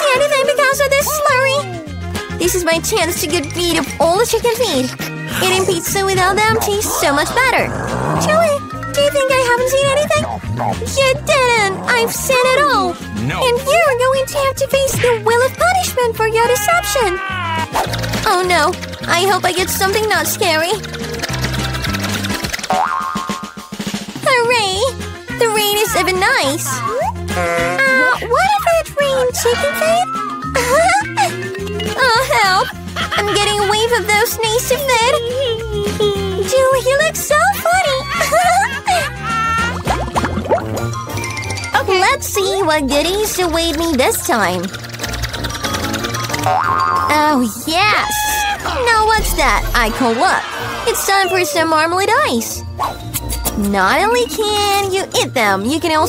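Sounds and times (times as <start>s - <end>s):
background music: 0.0s - 56.0s
person speaking: 11.0s - 13.7s
cartoon boing: 46.4s - 47.1s
drum roll: 49.1s - 51.2s.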